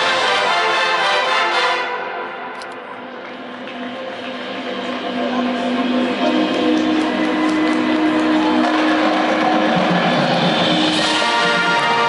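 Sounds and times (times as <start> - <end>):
marching band sustained chord: 3.4 - 12.0.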